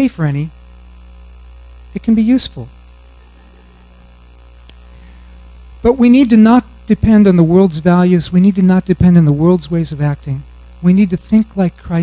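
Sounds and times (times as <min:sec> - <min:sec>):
electrical mains hum: 0:00.0 - 0:12.0
faint click: 0:04.6 - 0:04.8.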